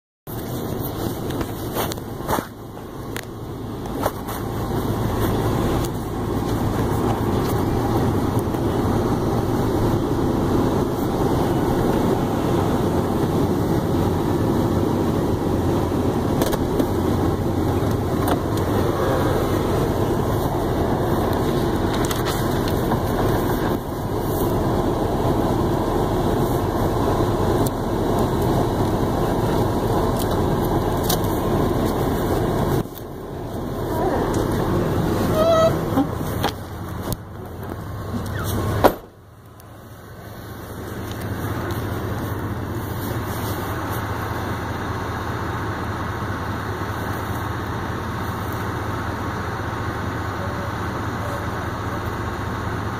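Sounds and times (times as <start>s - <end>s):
cloth rubbing on microphone: 0.3s - 2.7s, 40.5s - 44.2s.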